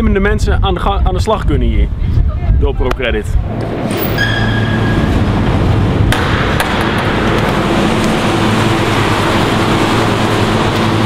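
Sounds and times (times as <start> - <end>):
refrigeration plant running: 3.2 - 11.0.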